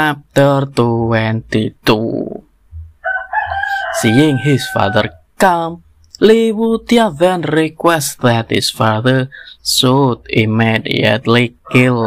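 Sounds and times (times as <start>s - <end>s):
rooster crowing: 3.0s - 5.2s.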